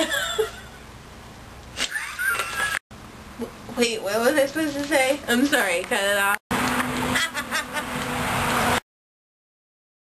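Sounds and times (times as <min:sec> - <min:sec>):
woman laughing: 0:00.0 - 0:00.8, 0:01.8 - 0:02.8, 0:07.1 - 0:08.0.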